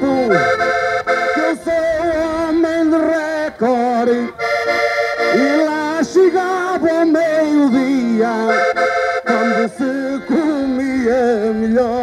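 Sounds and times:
accordion playing folk music: 0:00.0 - 0:12.0.

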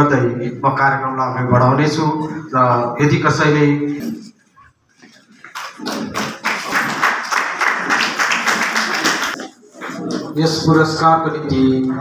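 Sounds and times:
audience applauding: 0:05.4 - 0:10.4.

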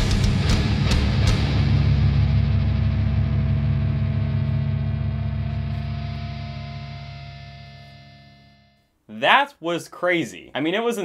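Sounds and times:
distorted electric guitar chord: 0:00.0 - 0:08.9.

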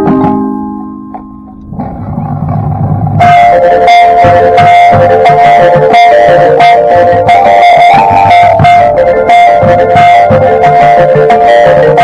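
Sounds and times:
marching band playing: 0:01.4 - 0:12.0
marimba notes: 0:03.2 - 0:12.0.

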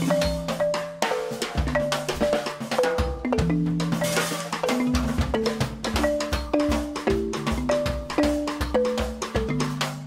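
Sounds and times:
drum kit played with sticks: 0:00.0 - 0:10.0
xylophone struck with mallets: 0:00.0 - 0:10.0.

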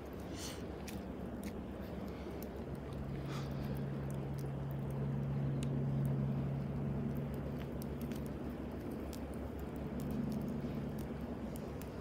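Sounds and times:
campfire crackling: 0:00.0 - 0:12.0
steady low hum: 0:00.0 - 0:12.0.

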